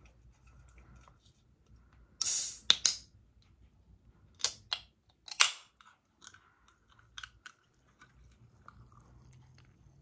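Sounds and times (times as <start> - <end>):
can opening pop and hiss: 2.2 - 3.0.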